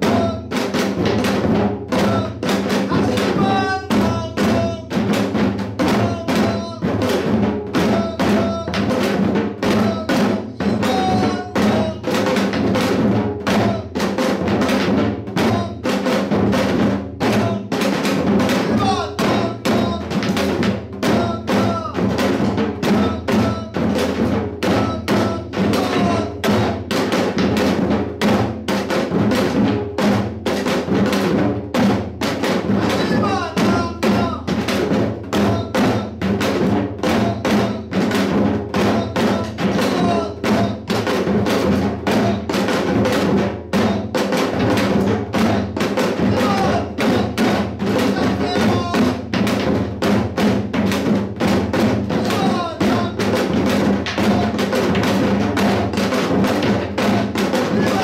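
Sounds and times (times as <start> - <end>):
hourglass drum fast beat: 0.0 - 58.0.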